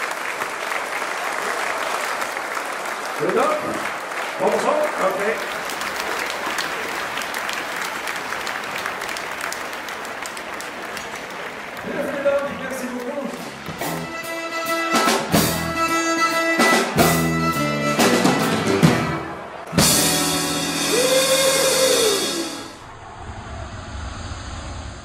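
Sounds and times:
live band playing: 12.6 - 22.8
noisy burst sound effect: 22.0 - 25.0.

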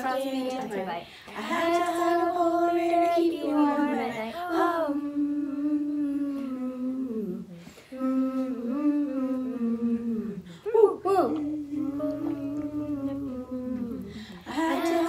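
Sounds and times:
girls singing and humming: 0.0 - 15.0.

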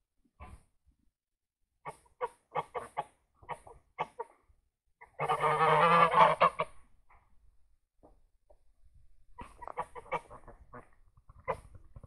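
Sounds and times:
geese honking: 5.1 - 6.7.

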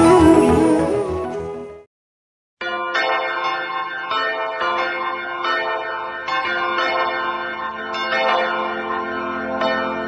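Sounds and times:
church bells ringing: 2.6 - 10.0.

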